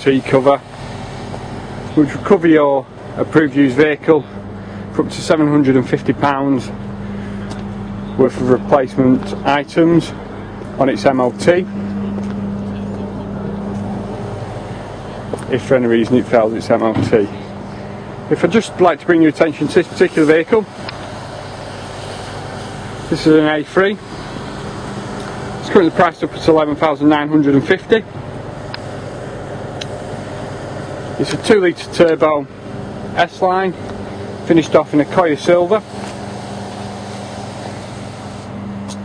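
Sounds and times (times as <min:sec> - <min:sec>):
low hum: 0:00.0 - 0:39.0
outdoor background rush: 0:00.0 - 0:39.0.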